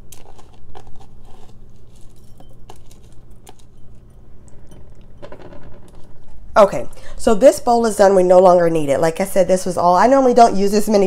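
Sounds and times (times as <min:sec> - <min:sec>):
fingers scraping a plastic bowl: 0:00.1 - 0:03.6.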